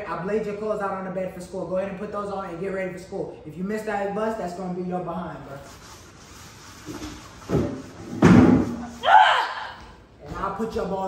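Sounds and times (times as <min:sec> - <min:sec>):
heavy thumps: 0:07.4 - 0:09.0.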